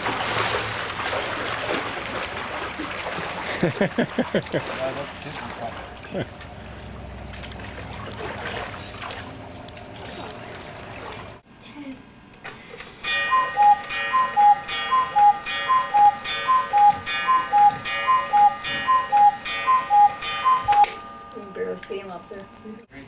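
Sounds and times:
cuckoo clock calls: 0:13.0 - 0:22.4.

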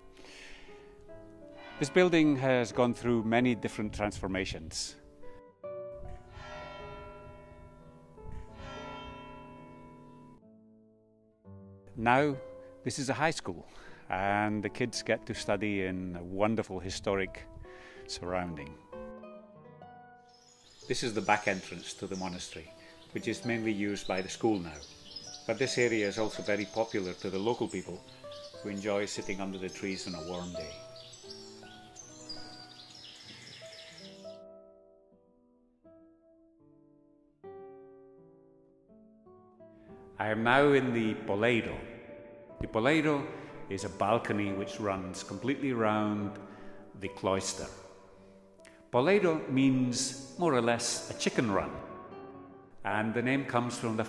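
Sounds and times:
church bell striking: 0:01.5 - 0:03.0, 0:06.0 - 0:10.4, 0:23.4 - 0:27.9
birds chirping: 0:20.3 - 0:34.4
soft classical guitar music: 0:50.9 - 0:52.9.

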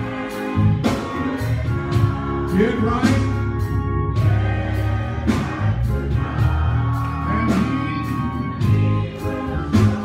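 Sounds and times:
bass line: 0:00.0 - 0:10.0
gospel choir singing: 0:00.0 - 0:10.0.

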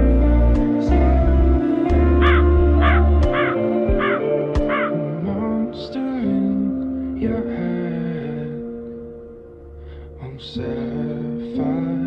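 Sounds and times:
slow background music: 0:00.0 - 0:12.0
crow cawing: 0:02.2 - 0:05.0.

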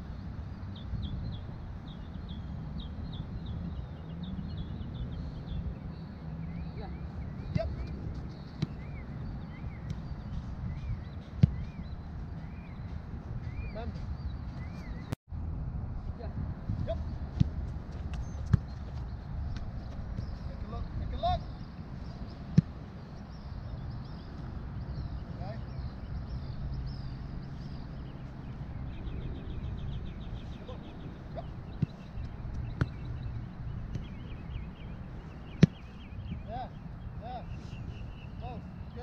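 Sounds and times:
birds chirping: 0:00.0 - 0:15.2, 0:16.2 - 0:39.0
football kicks: 0:07.4 - 0:09.1, 0:11.2 - 0:12.0, 0:16.8 - 0:20.4, 0:22.4 - 0:22.8, 0:31.3 - 0:33.2, 0:33.8 - 0:34.2, 0:35.4 - 0:36.1.

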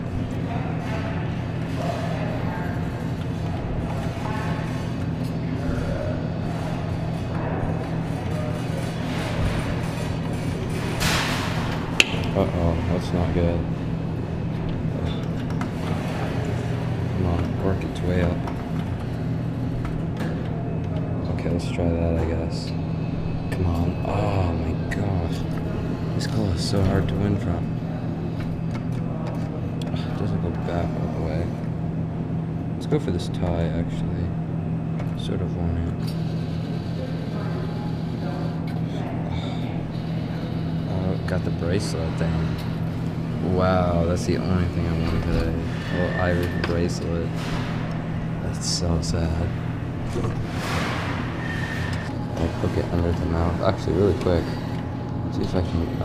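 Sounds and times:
distant voices: 0:00.0 - 0:56.0
low electrical hum: 0:00.0 - 0:56.0.

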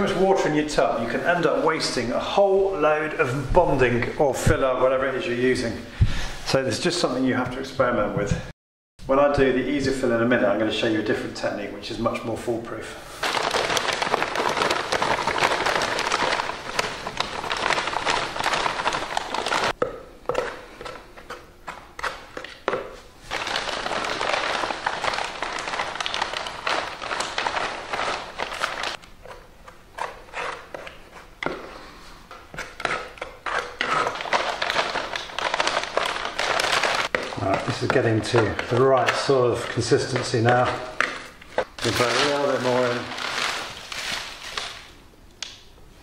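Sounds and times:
powder pouring from paper bag: 0:13.2 - 0:19.8, 0:23.2 - 0:29.0, 0:33.8 - 0:40.7, 0:41.8 - 0:44.9.

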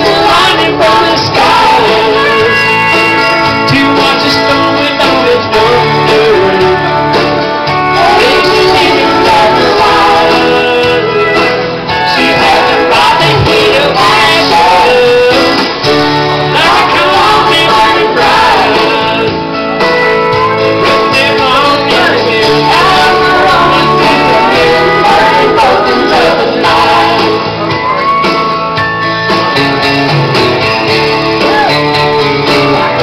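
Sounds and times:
man singing into a microphone: 0:00.0 - 0:19.4, 0:20.8 - 0:27.6
country song with guitar: 0:00.0 - 0:33.0.

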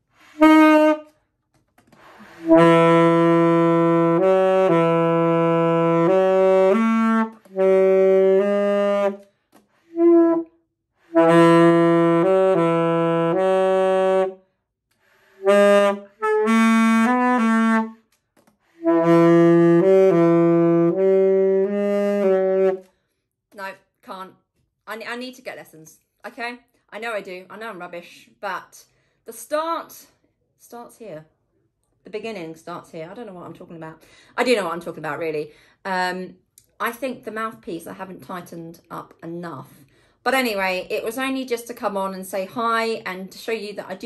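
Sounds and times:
alto saxophone low notes: 0:00.1 - 0:01.1, 0:01.9 - 0:09.3, 0:09.9 - 0:14.4, 0:15.2 - 0:18.1, 0:18.8 - 0:22.9.

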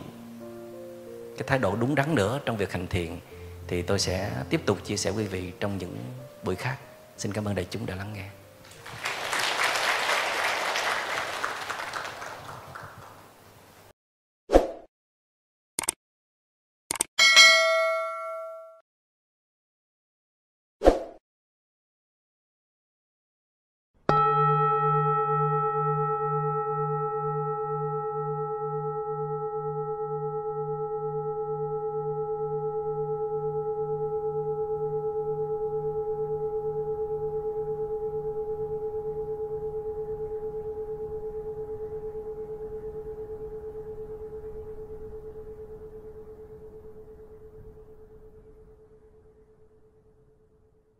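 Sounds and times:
singing bowl ringing: 0:17.2 - 0:18.8, 0:24.1 - 0:50.7.

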